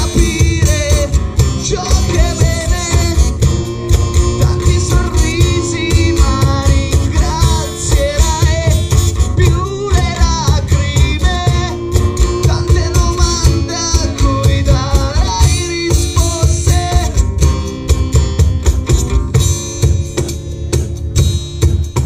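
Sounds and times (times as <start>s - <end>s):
man singing: 0.0s - 17.2s
acoustic guitars strummed: 0.0s - 22.0s
cajon beat: 0.0s - 22.0s.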